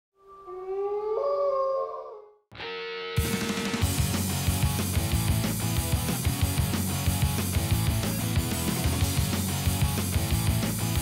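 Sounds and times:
wolf howling: 0.2 - 2.4.

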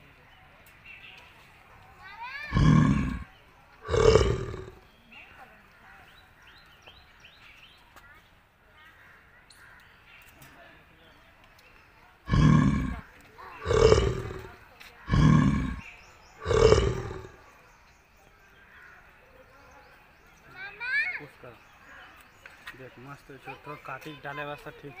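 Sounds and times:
bear calling: 2.5 - 4.8, 12.3 - 13.0, 13.6 - 15.8, 16.4 - 17.4.

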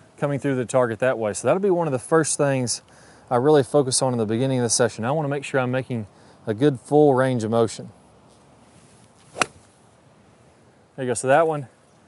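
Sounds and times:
golf club striking ball: 9.2 - 9.7.

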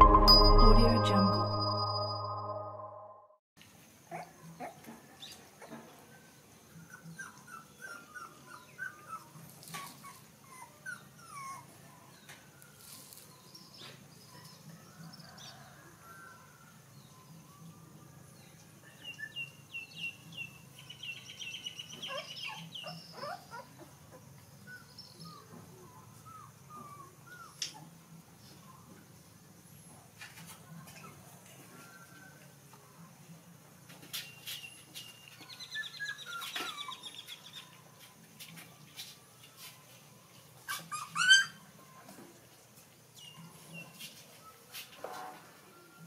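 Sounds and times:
puppies whimpering and yipping: 6.8 - 12.1, 22.0 - 27.9, 35.5 - 37.4, 40.6 - 42.0.

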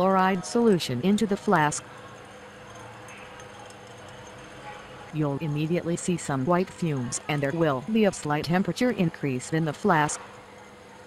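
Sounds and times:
faint constant tones: 0.0 - 11.0
low background hum: 0.0 - 11.0.

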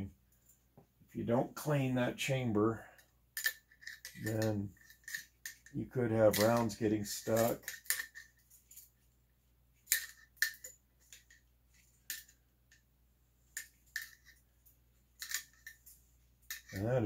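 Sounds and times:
light metallic clicks and clinks: 2.8 - 8.9, 9.9 - 11.4, 13.5 - 17.0.

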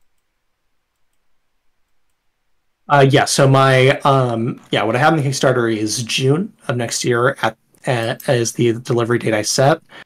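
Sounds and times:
faint clicks: 0.0 - 2.2
man saying uh: 2.9 - 10.0.

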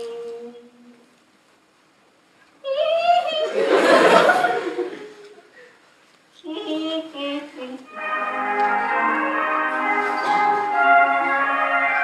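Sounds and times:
high voice singing: 6.4 - 9.6.

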